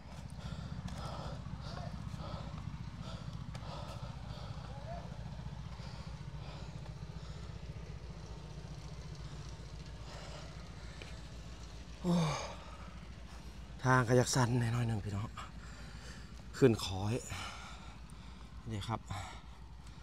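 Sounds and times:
low pulsing rumble: 0:00.0 - 0:14.1, 0:14.8 - 0:20.0
man sighing: 0:12.0 - 0:13.0.

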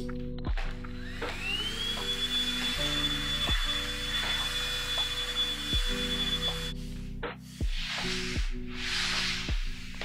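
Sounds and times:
background music with deep bass: 0:00.0 - 0:10.0
handheld vacuum cleaner on rug: 0:01.0 - 0:06.7, 0:07.6 - 0:10.0.

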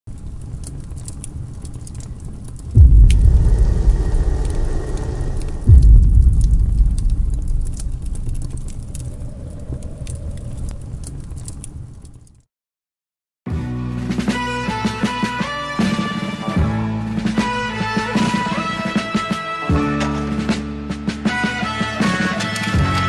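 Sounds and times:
scattered crackling: 0:00.1 - 0:12.4
low rumble: 0:02.7 - 0:12.2
deep low hits: 0:02.8 - 0:11.2.

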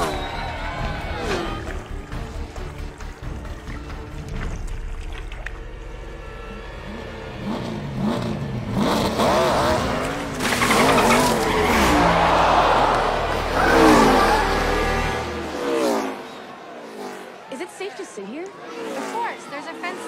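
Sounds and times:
race cars passing at speed: 0:00.0 - 0:01.9, 0:06.6 - 0:20.0.

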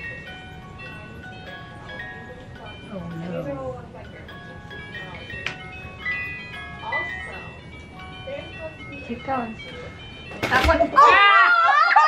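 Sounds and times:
music-box tune: 0:00.0 - 0:11.3.

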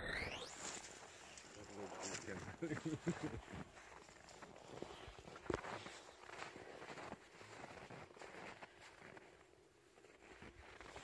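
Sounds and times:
footsteps crunching through snow: 0:00.4 - 0:11.0.

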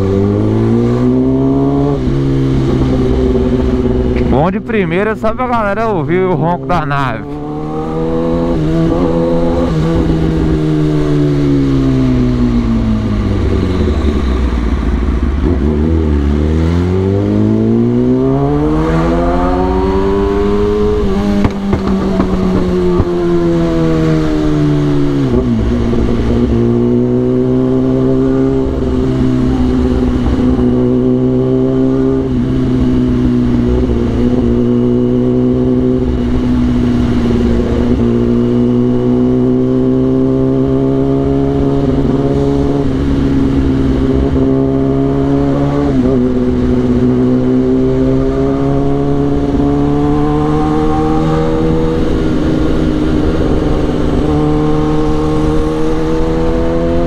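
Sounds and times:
motorcycle engine roar: 0:00.0 - 0:57.0.

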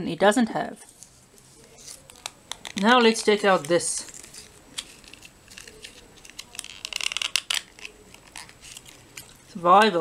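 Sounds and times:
plastic wrapper crinkling and tearing: 0:00.9 - 0:09.6.

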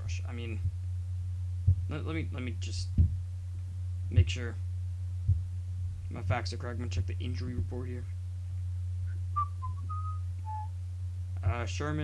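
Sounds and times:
low electrical hum: 0:00.0 - 0:12.0
person whistling: 0:09.1 - 0:10.7.

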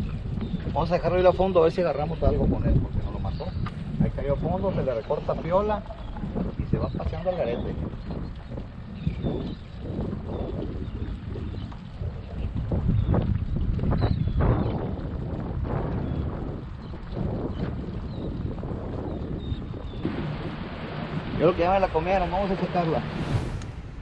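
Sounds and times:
water lapping at hull: 0:00.0 - 0:23.0
wind buffeting microphone: 0:00.0 - 0:24.0.

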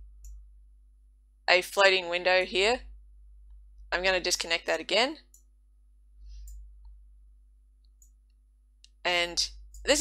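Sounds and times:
faint mouse clicks: 0:05.3 - 0:05.5, 0:06.3 - 0:07.0, 0:07.8 - 0:09.0.

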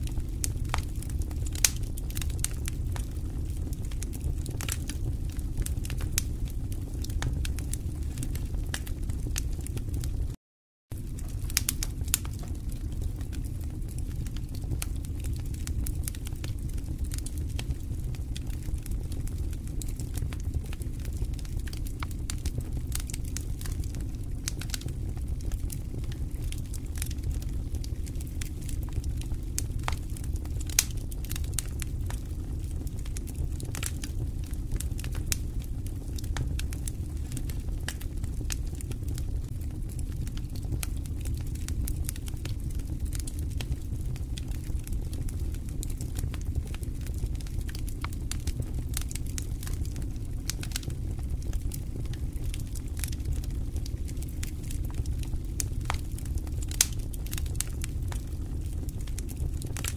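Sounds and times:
steady low rumble: 0:00.0 - 0:10.4.

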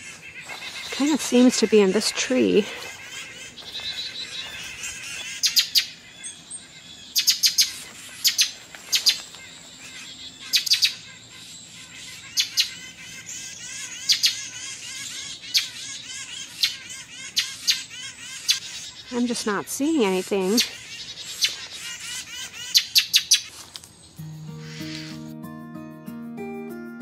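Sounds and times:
birds chattering: 0:00.0 - 0:25.2
songbirds scolding calls: 0:00.0 - 0:25.3.

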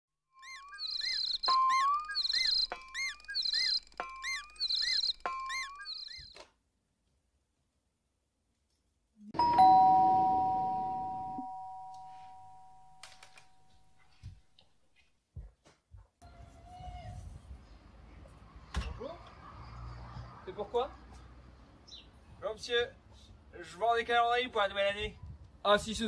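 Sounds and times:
bright chiming jingle: 0:09.4 - 0:13.7
two-tone doorbell chime: 0:09.4 - 0:13.8.

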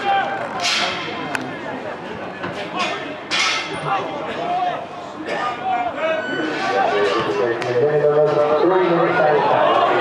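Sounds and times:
players shouting: 0:08.4 - 0:10.0.

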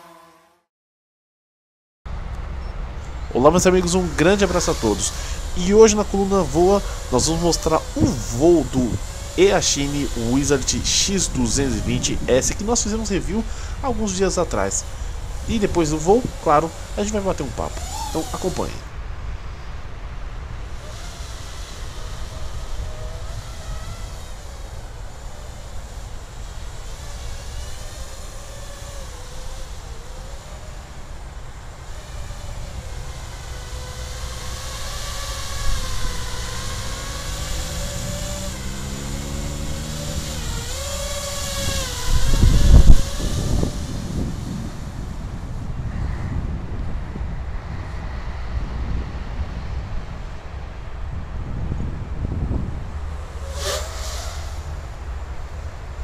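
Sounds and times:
quadcopter motors buzzing whine: 0:00.0 - 0:00.7, 0:02.1 - 0:56.0
steady low rumble: 0:02.1 - 0:23.4.

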